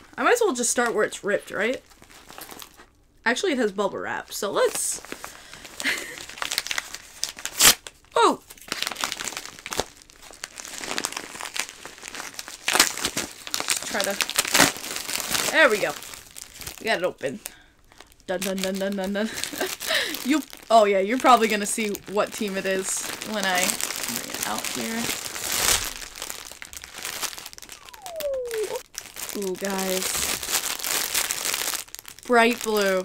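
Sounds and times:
padded mailer crinkling: 5.0 - 17.0, 18.0 - 33.0.

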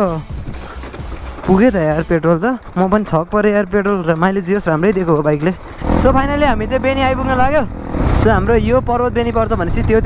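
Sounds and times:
wind: 0.0 - 10.0
dirt bike engine running: 0.3 - 10.0.

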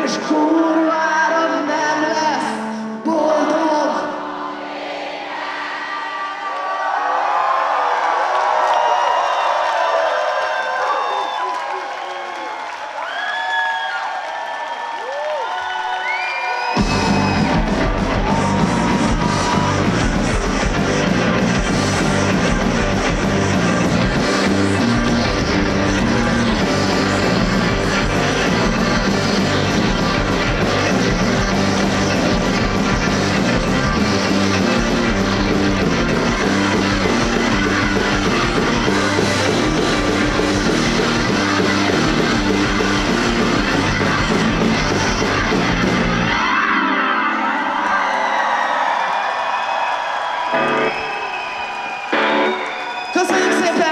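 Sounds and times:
rock band playing: 16.7 - 48.9, 50.4 - 53.9.

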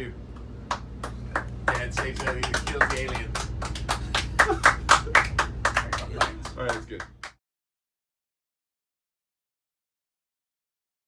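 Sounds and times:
steady low hum: 0.0 - 7.4
people clapping: 0.6 - 7.4.

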